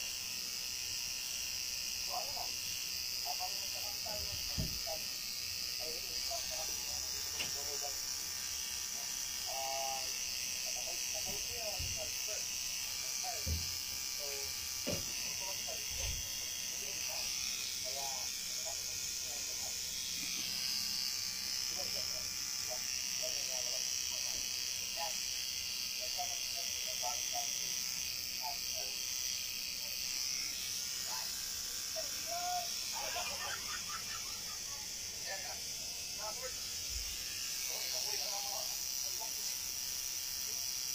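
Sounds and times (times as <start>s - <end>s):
tattoo machine buzzing: 0.0s - 40.9s.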